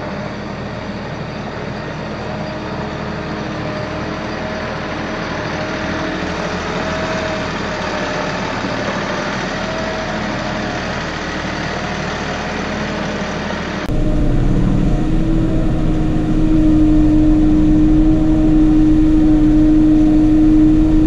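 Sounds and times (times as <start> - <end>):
tractor engine running: 0.0 - 21.0
faint steady whine: 13.9 - 21.0.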